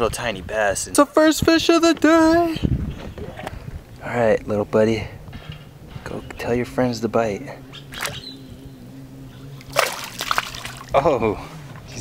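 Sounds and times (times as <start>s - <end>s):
water splashing: 7.9s - 8.2s, 9.6s - 11.0s.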